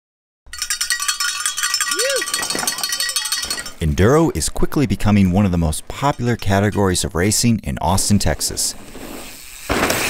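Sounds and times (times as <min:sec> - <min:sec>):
cowbells ringing: 0:00.5 - 0:07.2.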